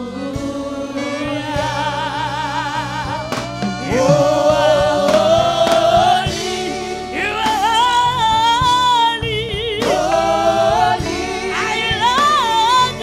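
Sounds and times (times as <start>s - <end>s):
choir singing gospel: 0.0s - 13.0s
musical accompaniment: 0.0s - 13.0s.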